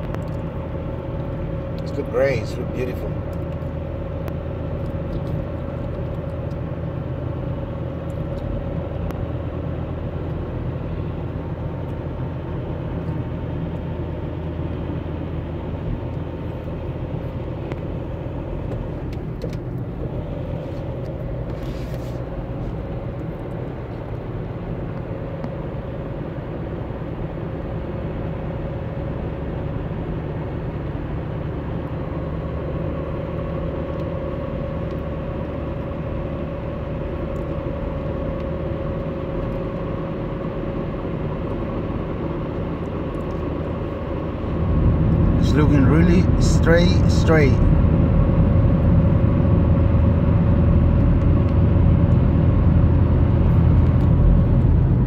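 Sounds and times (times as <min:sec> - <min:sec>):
steady whine: 0:00.0 - 0:27.6, 0:29.5 - 0:55.0
road and engine rumble: 0:00.0 - 0:55.0.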